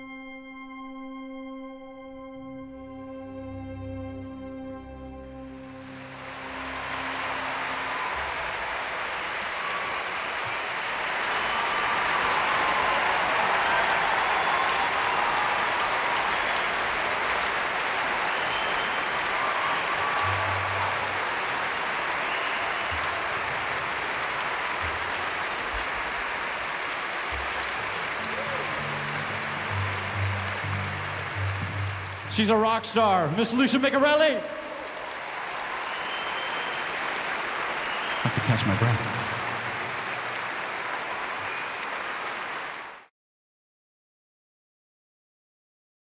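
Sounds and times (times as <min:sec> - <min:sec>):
large audience applauding: 0:05.7 - 0:43.1
music notes: 0:27.4 - 0:33.3.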